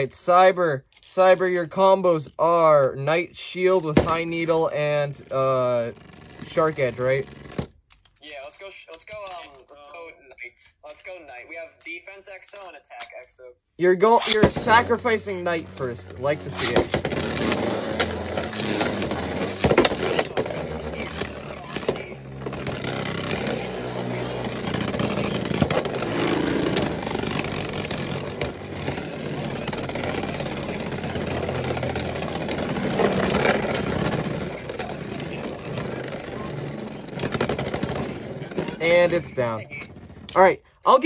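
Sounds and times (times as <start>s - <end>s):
spinning tops whirring and scraping: 3.6s - 7.7s, 13.9s - 40.5s.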